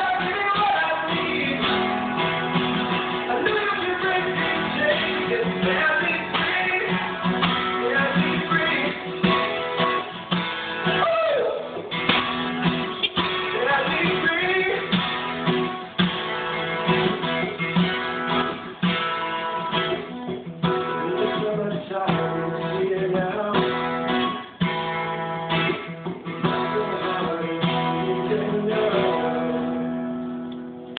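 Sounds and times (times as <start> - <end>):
acoustic guitar strumming chords: 0.0 - 31.0.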